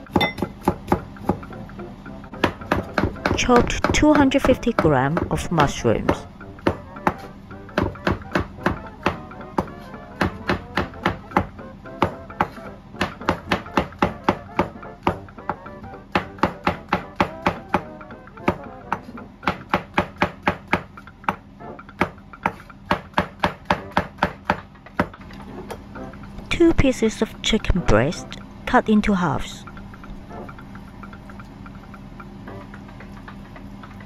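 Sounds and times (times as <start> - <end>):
faint background music: 0.0 - 33.8.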